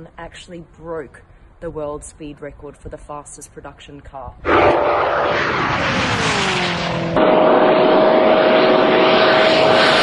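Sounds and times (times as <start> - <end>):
car engine passing at speed: 4.4 - 10.0
rushing noise of car at speed: 4.4 - 10.0.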